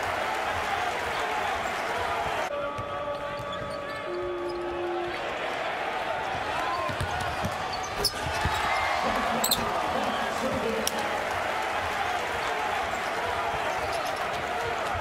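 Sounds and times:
arena noise: 0.0s - 15.0s.

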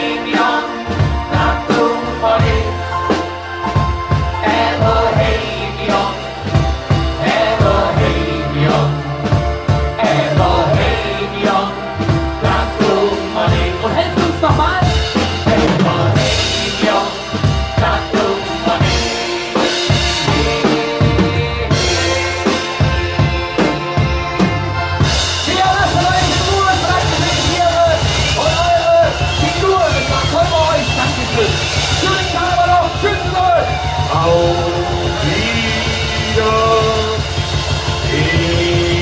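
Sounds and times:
loud band music with drums: 0.0s - 39.0s
man singing into microphone: 12.4s - 23.3s, 25.5s - 39.0s.

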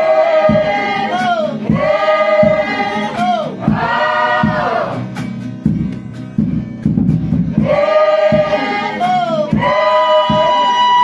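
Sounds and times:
choir singing: 0.0s - 5.0s, 7.6s - 11.0s.

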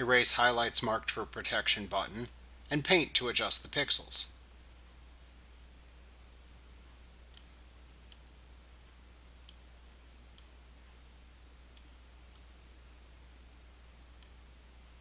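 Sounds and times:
steady low hum: 0.0s - 15.0s
computer mouse clicks: 7.3s - 7.5s, 8.1s - 8.3s.

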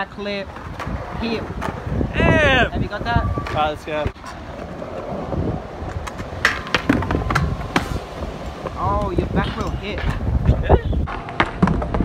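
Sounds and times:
scooter wheels rolling on concrete: 0.0s - 12.0s.

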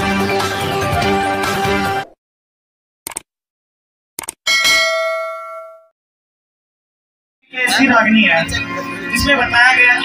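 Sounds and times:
notification bell ding: 4.5s - 5.9s.

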